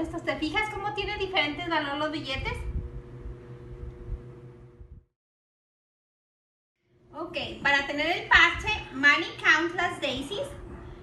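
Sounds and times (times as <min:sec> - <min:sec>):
faint steady hum: 0:00.0 - 0:05.1, 0:06.8 - 0:11.0
low rumble: 0:02.3 - 0:05.1.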